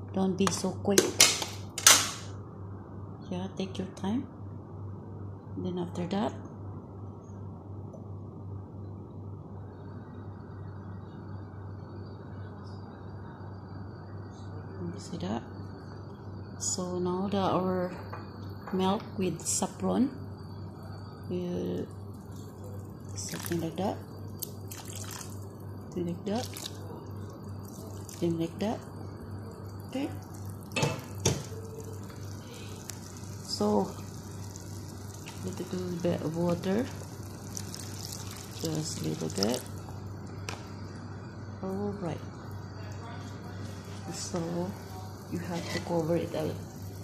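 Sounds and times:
low hum: 6.4 - 47.0
food cooking in a pan: 19.4 - 47.0.

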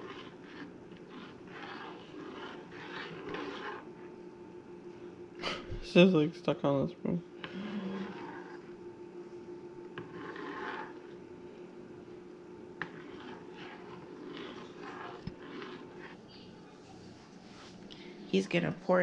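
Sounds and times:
spoon stirring in a pan: 0.0 - 4.4, 7.4 - 8.9, 9.8 - 11.4, 12.4 - 17.0.

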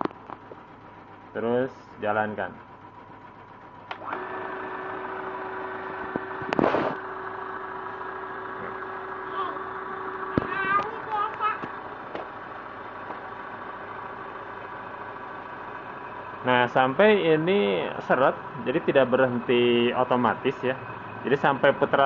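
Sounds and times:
bobbin winder motor whine: 0.0 - 22.0.

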